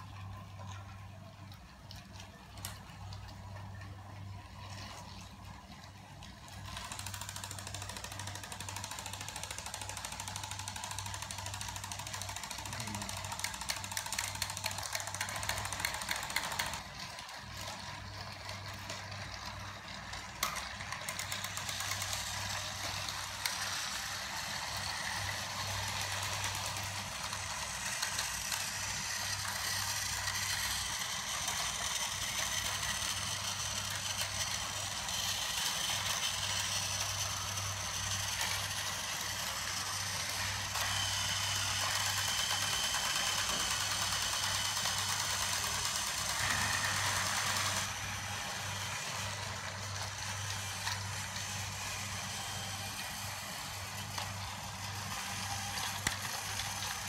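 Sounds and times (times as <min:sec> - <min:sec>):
toy train motors whirring: 0:00.0 - 0:57.0
ratcheting clatter: 0:06.6 - 0:52.9.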